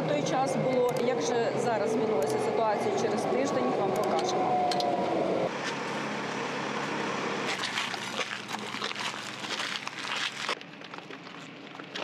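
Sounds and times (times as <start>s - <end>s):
vehicle engine and road drone: 0.0s - 12.0s.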